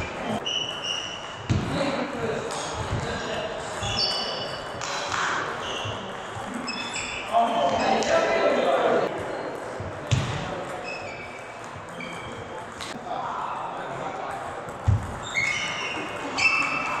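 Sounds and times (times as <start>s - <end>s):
shoe squeaks: 0.0s - 1.6s, 3.6s - 4.8s, 5.5s - 8.1s, 10.7s - 12.8s, 15.2s - 17.0s
voices: 1.6s - 17.0s.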